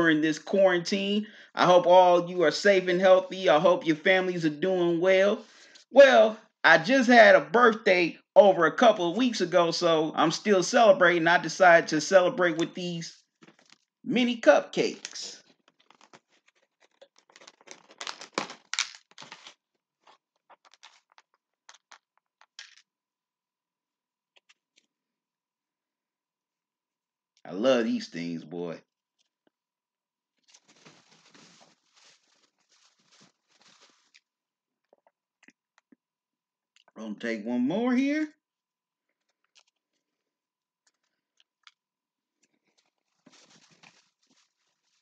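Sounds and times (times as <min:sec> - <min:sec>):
plastic crinkle: 0:13.4 - 0:13.9, 0:15.0 - 0:22.8, 0:30.4 - 0:34.4, 0:42.4 - 0:45.0
person chewing: 0:15.6 - 0:18.2, 0:19.3 - 0:22.0, 0:34.0 - 0:36.1, 0:39.1 - 0:43.2.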